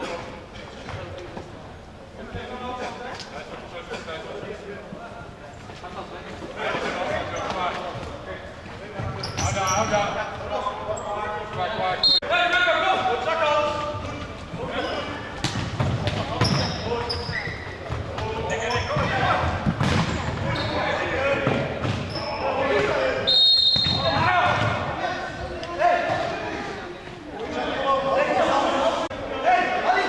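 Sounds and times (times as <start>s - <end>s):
shoes squeaking: 5.5s - 12.2s, 13.6s - 27.3s
players shouting: 16.0s - 30.0s
referee's whistle blast: 23.3s - 24.1s.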